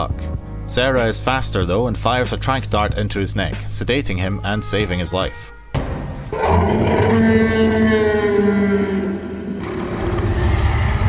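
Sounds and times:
dinosaur roar falling in pitch: 6.3 - 11.0.

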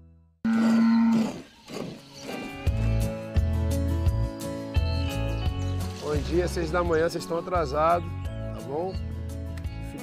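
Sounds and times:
cattle mooing: 0.5 - 1.5.

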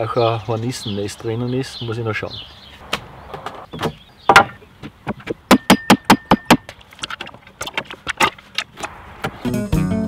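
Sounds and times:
wooden pallets knocking and clattering: 3.3 - 9.4.

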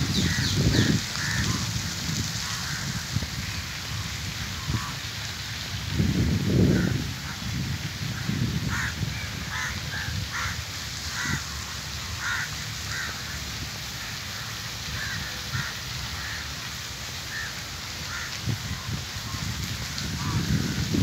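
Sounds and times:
crows cawing: 0.2 - 1.6, 8.7 - 11.6, 12.2 - 13.4, 15.0 - 16.5, 17.3 - 18.3.

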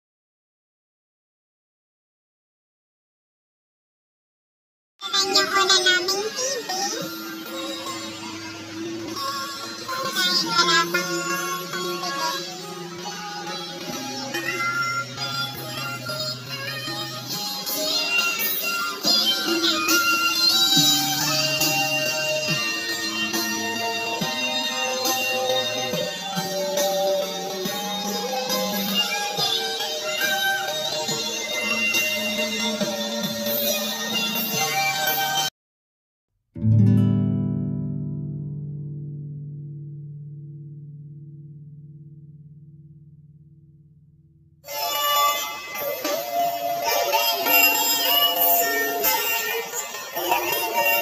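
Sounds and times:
song with singing and instruments: 5.1 - 35.5, 44.7 - 51.0
guitar chord ringing: 36.6 - 44.6.

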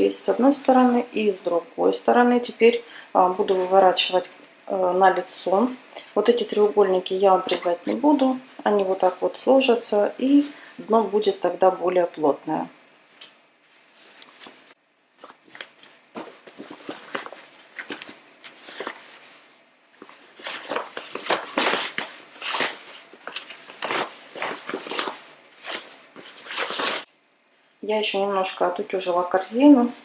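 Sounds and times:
stiff fabric rustling: 13.6 - 27.1.

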